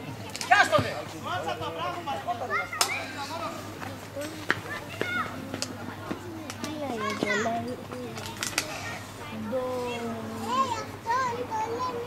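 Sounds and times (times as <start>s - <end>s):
children shouting: 2.4s - 3.6s, 4.6s - 7.6s, 10.4s - 12.0s.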